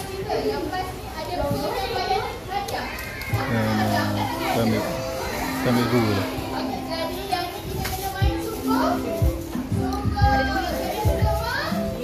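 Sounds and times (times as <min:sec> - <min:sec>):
children's voices: 0:00.0 - 0:12.0
crowd chatter: 0:00.0 - 0:12.0
music with held low notes: 0:03.4 - 0:12.0.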